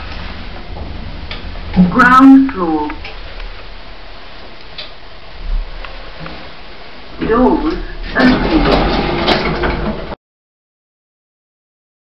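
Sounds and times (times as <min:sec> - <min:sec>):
lift doors sliding open: 0:00.0 - 0:02.0, 0:03.0 - 0:10.2.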